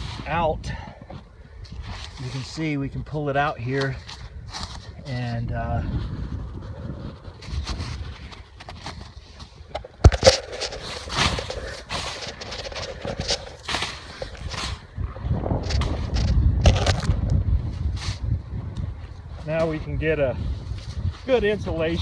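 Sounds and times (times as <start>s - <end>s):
tent fabric rustling: 6.3s - 17.1s
snow crunching: 7.2s - 17.1s.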